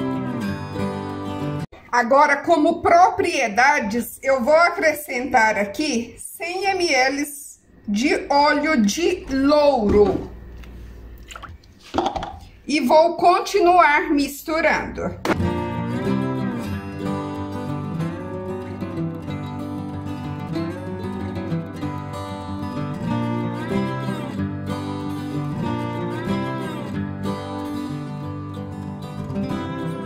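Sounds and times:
instrumental guitar music: 0.0 - 1.9, 15.2 - 30.0.

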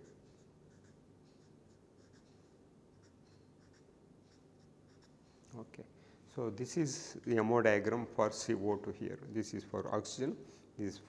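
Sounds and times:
marker scratching on paper: 0.0 - 5.3.

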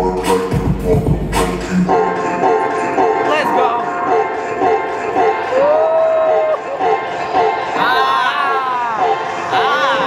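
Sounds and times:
dance music with steady beat: 0.0 - 8.1.

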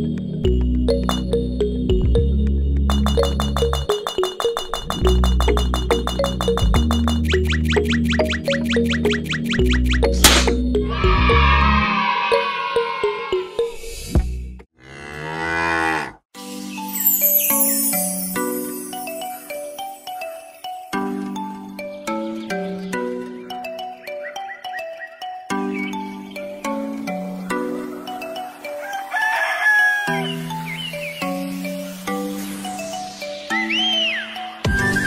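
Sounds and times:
cow mooing: 14.8 - 16.2
music with sustained notes: 16.4 - 35.0
rooster crowing: 27.8 - 30.4.

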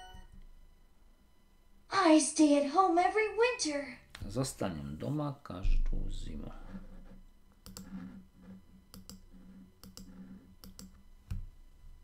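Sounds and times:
computer mouse button clicking: 9.8 - 11.4.

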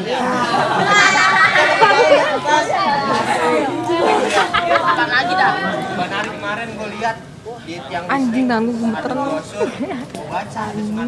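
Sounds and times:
people talking over one another: 0.0 - 11.0.

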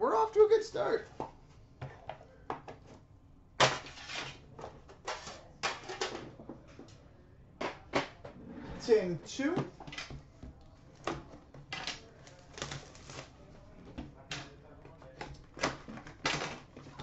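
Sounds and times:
card boxes clicking and scraping: 3.6 - 6.4, 15.1 - 17.0.

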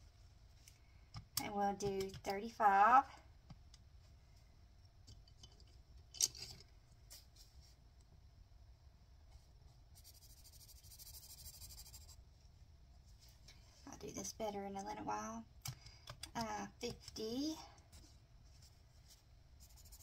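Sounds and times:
pencil scribbling on paper: 10.0 - 12.2, 19.6 - 20.0.

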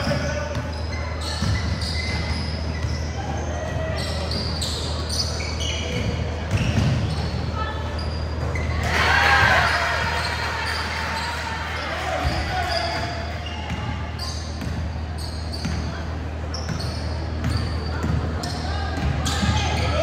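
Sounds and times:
players' voices: 0.0 - 20.0
sneakers squeaking: 0.0 - 20.0.

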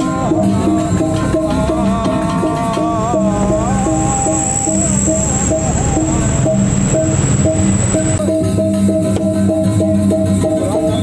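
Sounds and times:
gamelan music: 0.0 - 11.0
steady high thin tone: 1.8 - 8.3.

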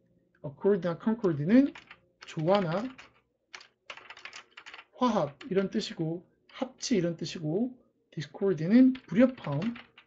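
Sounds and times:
computer keyboard typing: 1.5 - 5.9, 8.9 - 10.0.

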